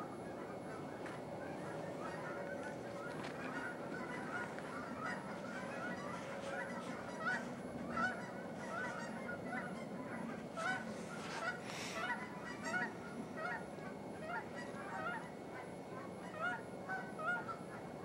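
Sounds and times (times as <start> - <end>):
flock of birds calling: 0.0 - 18.0
low background hum: 0.0 - 18.0.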